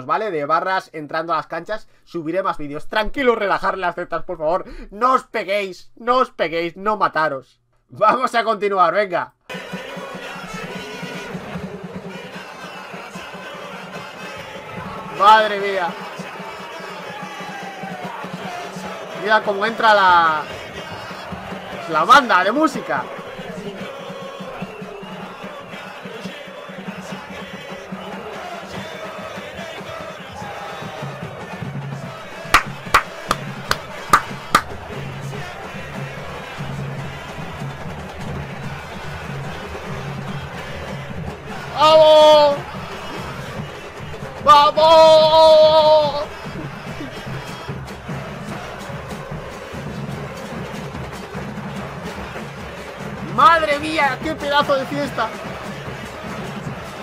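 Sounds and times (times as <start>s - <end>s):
crowd chanting: 9.5s - 57.0s
bass drum beat: 32.0s - 57.0s.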